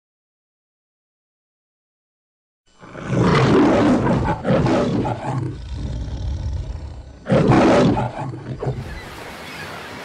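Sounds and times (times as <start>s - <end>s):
lion roaring: 2.8s - 8.8s.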